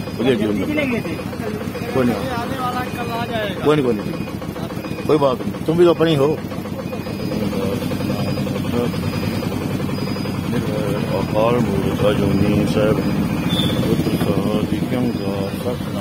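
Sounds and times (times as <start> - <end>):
vehicle engine idling: 0.0 - 16.0
voices speaking: 0.0 - 16.0.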